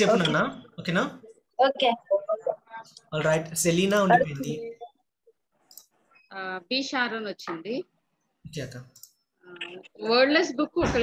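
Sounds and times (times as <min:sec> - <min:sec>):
speech over video call: 0:00.0 - 0:05.4.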